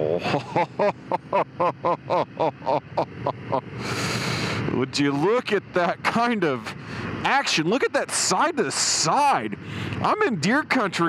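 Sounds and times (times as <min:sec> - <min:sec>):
motorcycle ride noise: 0:00.0 - 0:11.0
man laughing in bursts: 0:00.2 - 0:04.1.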